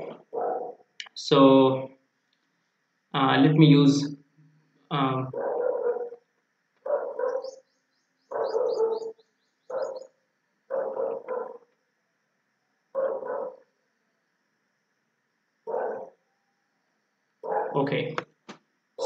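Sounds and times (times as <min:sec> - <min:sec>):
faint high chirps: 0:06.9 - 0:11.6
short animal calls: 0:08.3 - 0:10.1.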